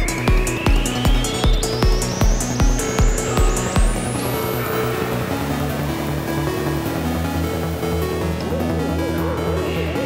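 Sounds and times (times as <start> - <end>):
rising synth sweep: 0.1 - 10.0.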